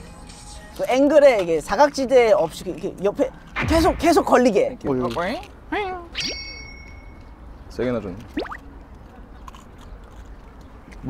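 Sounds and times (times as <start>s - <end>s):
mint crunching: 8.2s - 11.0s.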